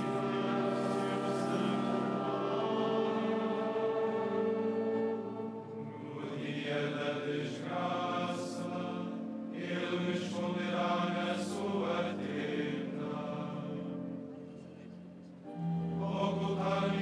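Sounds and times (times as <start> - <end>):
male choir chanting: 0.0 - 14.3, 15.9 - 17.0.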